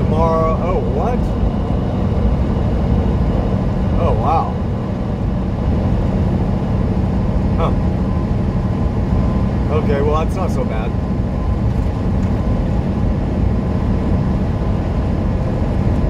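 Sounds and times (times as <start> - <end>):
road noise: 0.0 - 16.0
truck engine drone: 0.0 - 16.0.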